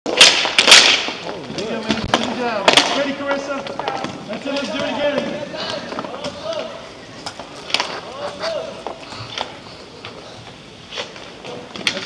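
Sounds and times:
hockey sticks clacking on puck: 0:00.1 - 0:10.2, 0:10.9 - 0:12.0.

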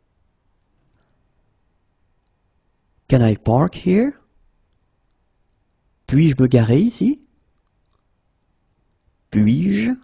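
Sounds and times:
person speaking: 0:09.3 - 0:10.0.

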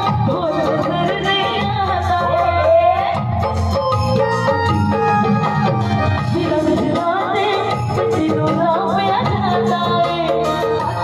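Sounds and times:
amplified instrumental accompaniment: 0:00.0 - 0:11.0
woman singing into a microphone: 0:00.0 - 0:11.0.

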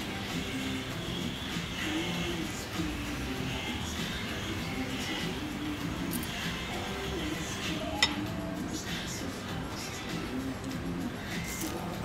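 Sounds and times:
quiet background music: 0:00.0 - 0:12.0
cutlery clinking on a plate: 0:07.8 - 0:08.4.

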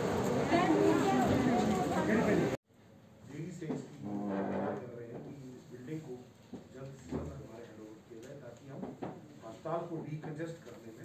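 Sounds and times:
indistinct speech in reverberant room: 0:00.4 - 0:11.0.

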